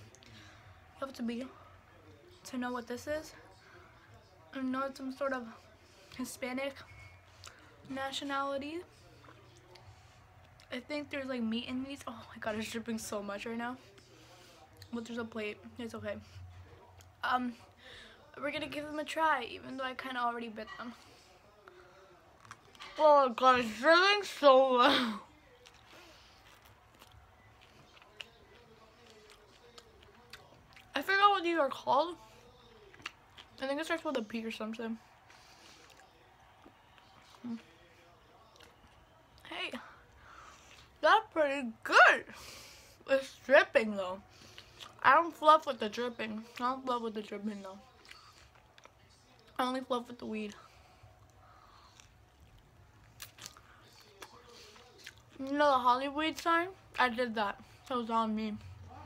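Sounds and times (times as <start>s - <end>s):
chewing soft wet food: 8.8s - 10.7s, 16.2s - 17.2s, 21.0s - 22.9s, 25.3s - 31.0s, 32.2s - 34.3s, 34.9s - 41.0s, 44.2s - 45.0s, 47.8s - 55.6s.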